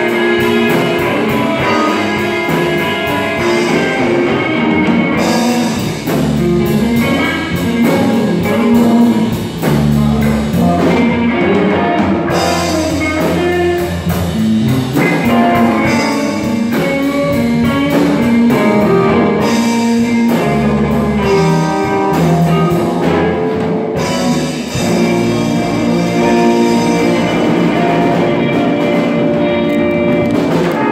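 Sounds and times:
live rock band playing: 0.0s - 30.9s.

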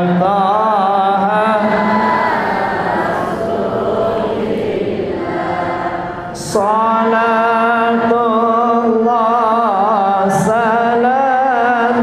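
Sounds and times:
man singing through microphone: 0.0s - 2.0s, 6.4s - 12.0s
voices chanting along: 0.0s - 12.0s.

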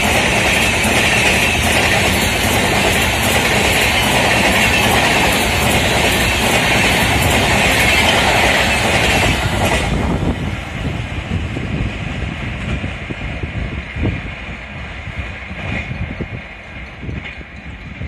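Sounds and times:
train wheels rushing on rail: 0.0s - 18.0s.

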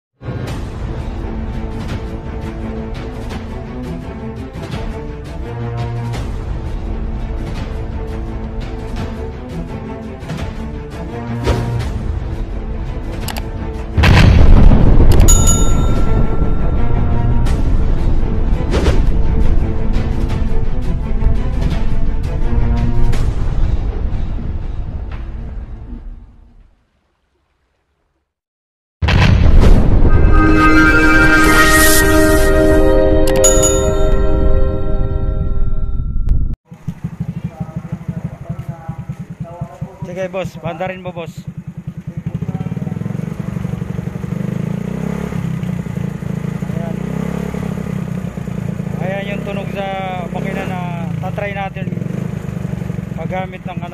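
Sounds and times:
explosion boom rumbling: 14.0s - 15.2s, 29.0s - 31.5s
intro music: 14.1s - 24.6s, 29.6s - 36.6s
high bell chime: 15.2s - 17.4s, 31.3s - 36.6s
motorcycle engine idling: 36.7s - 53.9s.

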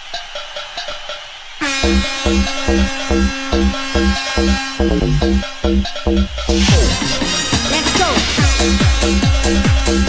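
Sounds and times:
bounce dance music: 0.0s - 10.0s.

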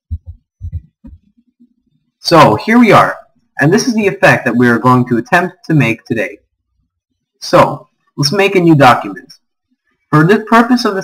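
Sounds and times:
soft low thumps: 0.0s - 1.8s.

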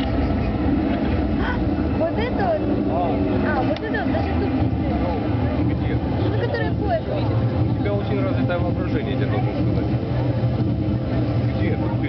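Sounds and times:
audience chatter: 0.0s - 12.0s
steady low rumble: 0.0s - 12.0s.

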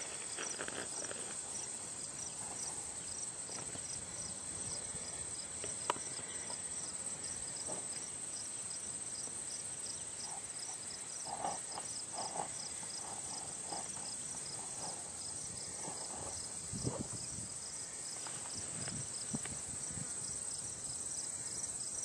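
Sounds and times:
insect chirps: 0.0s - 22.0s
insects trilling: 0.0s - 22.0s.

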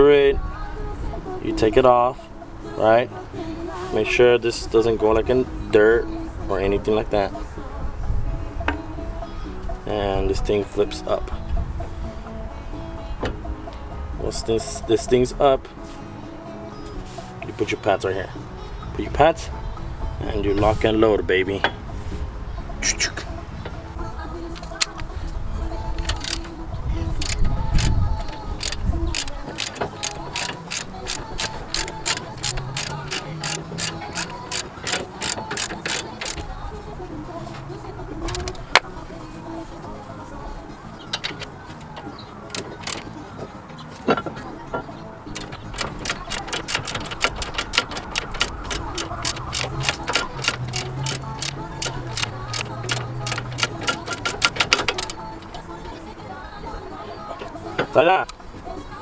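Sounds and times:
socket ratchet wrench clicking: 26.0s - 26.6s, 27.2s - 36.5s, 38.2s - 38.6s, 42.5s - 43.1s, 45.4s - 55.7s.

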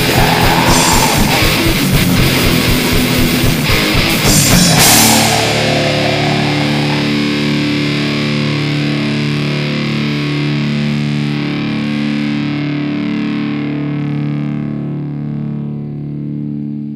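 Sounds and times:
drums: 0.0s - 8.8s
distorted electric guitar chord: 0.0s - 16.3s.

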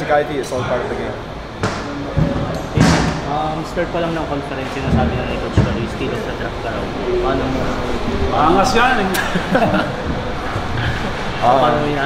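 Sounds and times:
background voices: 0.6s - 12.0s.

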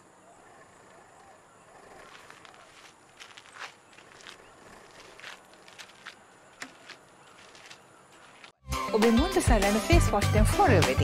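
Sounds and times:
soft footsteps: 1.9s - 8.6s.

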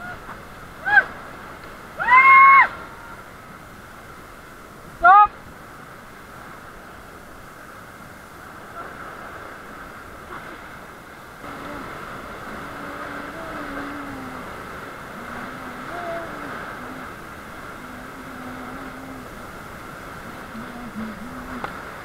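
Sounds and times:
rushing whitewater: 0.0s - 22.0s
person calling in drawn-out tones: 11.4s - 19.4s, 20.4s - 21.8s.

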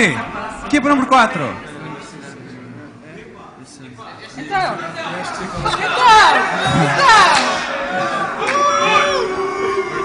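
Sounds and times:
voices chattering and laughing: 0.0s - 10.0s.

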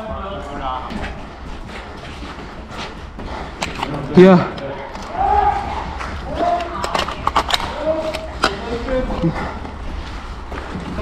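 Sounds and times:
distant people shouting: 5.0s - 6.8s.

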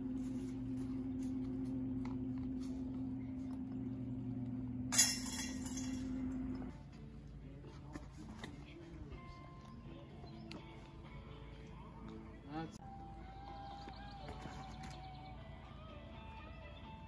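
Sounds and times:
steady low hum: 0.0s - 17.0s
disc hitting metal chains: 4.9s - 6.5s.

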